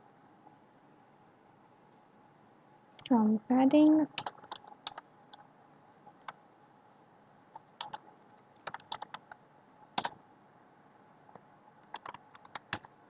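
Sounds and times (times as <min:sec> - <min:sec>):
computer keyboard typing: 0:03.7 - 0:05.5, 0:06.2 - 0:06.4, 0:07.6 - 0:08.0, 0:08.6 - 0:09.4, 0:10.0 - 0:10.2, 0:11.8 - 0:13.0.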